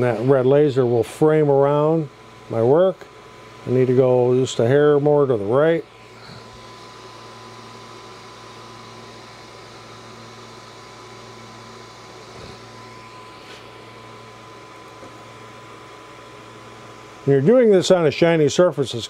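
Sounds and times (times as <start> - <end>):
faint high whine: 0.0 - 19.0
fan humming: 0.0 - 19.0.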